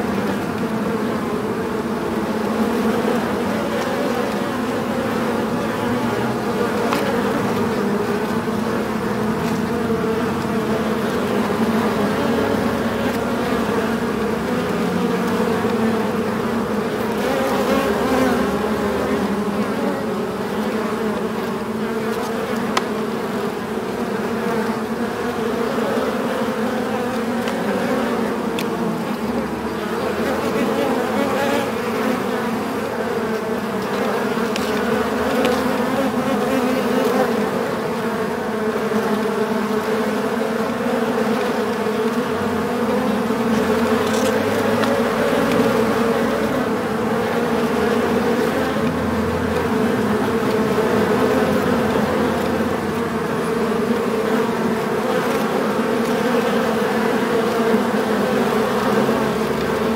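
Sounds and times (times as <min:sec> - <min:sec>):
bees buzzing: 0:00.0 - 0:59.9.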